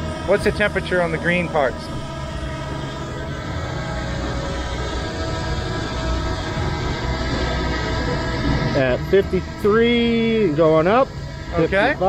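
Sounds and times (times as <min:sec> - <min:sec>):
drone propellers whining: 0:00.0 - 0:12.0.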